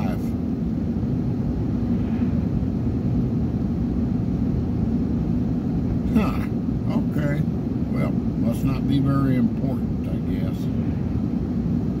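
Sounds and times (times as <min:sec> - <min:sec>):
road and engine rumble in cabin: 0:00.0 - 0:12.0.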